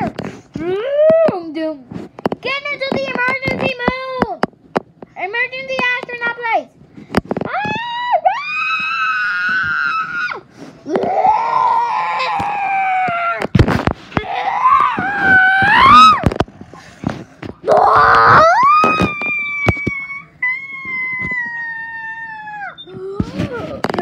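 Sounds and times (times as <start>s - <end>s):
child screaming: 7.5s - 13.4s, 14.2s - 16.2s, 17.7s - 23.0s.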